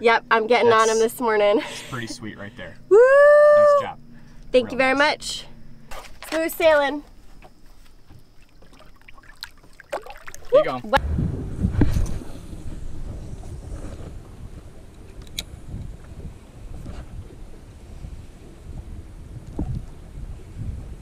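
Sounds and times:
wind buffeting microphone: 10.5s - 21.0s.

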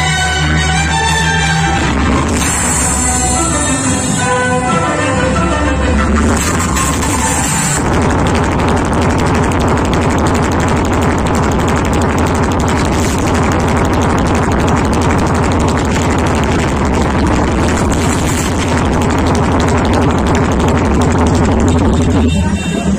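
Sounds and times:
loud electronic dance music: 0.0s - 22.9s.

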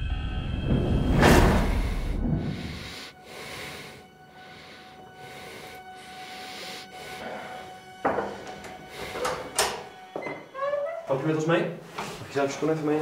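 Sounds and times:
low whoosh: 0.0s - 3.0s.

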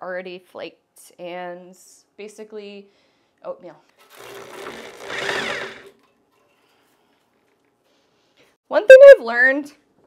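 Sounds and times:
cordless drill spinning: 4.0s - 6.0s.

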